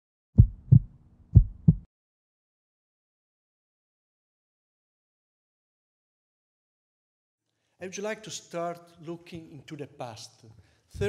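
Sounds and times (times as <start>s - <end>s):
heartbeat thumps: 0.4s - 1.9s.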